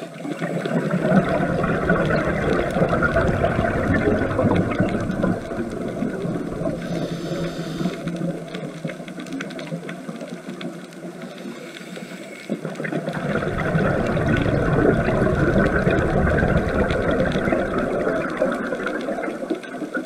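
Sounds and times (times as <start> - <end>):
underwater bubbling of exhaled breath: 0.0 - 20.0.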